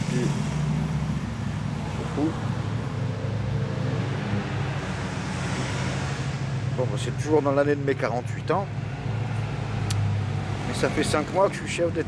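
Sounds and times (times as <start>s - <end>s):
city street traffic rumble: 0.0s - 12.0s.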